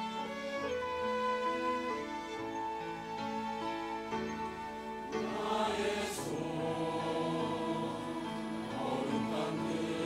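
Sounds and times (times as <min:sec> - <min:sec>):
church choir singing: 0:00.0 - 0:00.8, 0:05.0 - 0:10.0
piano accompaniment: 0:00.0 - 0:10.0
string ensemble: 0:00.0 - 0:10.0.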